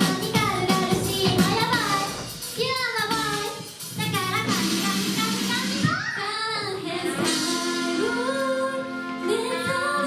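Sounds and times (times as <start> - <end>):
girls singing a pop song: 0.0 - 10.0
pop backing track: 0.0 - 10.0.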